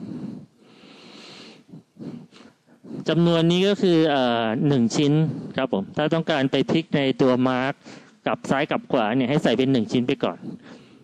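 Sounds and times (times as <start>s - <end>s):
person breathing close to microphone: 0.0s - 3.6s, 5.1s - 5.7s, 7.8s - 8.3s, 10.2s - 11.0s
person speaking: 2.0s - 11.0s.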